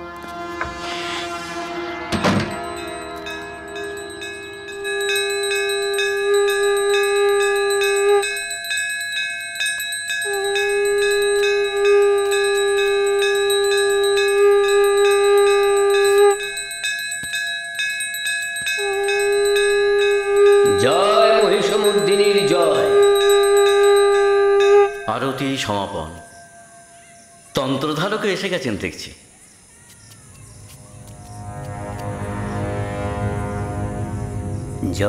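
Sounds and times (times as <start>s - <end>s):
conch shell blasts: 0.0s - 8.4s, 10.3s - 16.6s
hand bell ringing rapidly: 3.6s - 25.4s.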